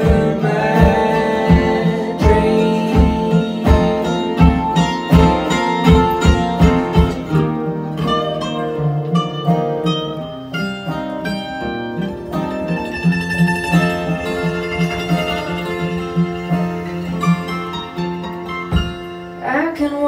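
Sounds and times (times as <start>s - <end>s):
acoustic guitars strumming: 0.0s - 20.0s
picked mandolin lead line: 0.0s - 20.0s.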